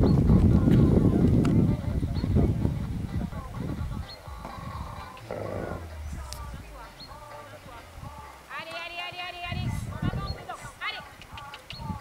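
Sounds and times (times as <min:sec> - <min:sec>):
people talking indistinctly: 0:01.8 - 0:11.5.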